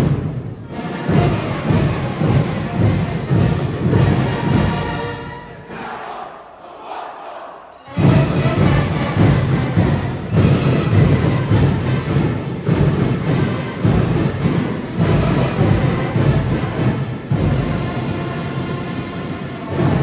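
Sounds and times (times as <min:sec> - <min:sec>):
marching band playing: 0:00.0 - 0:20.0.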